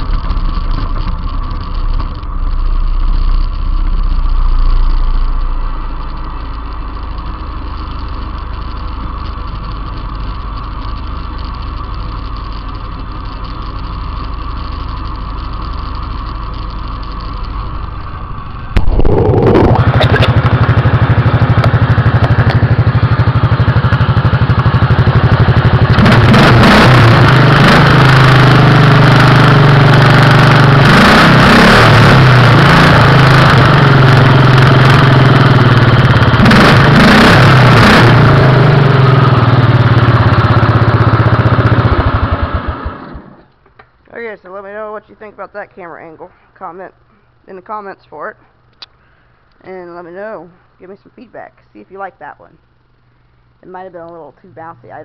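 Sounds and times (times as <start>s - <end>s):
small engine running: 0.0s - 43.5s.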